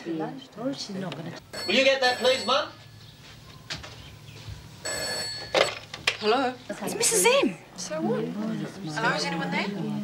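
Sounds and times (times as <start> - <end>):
telephone ringing: 1.5 - 3.0, 4.8 - 6.0.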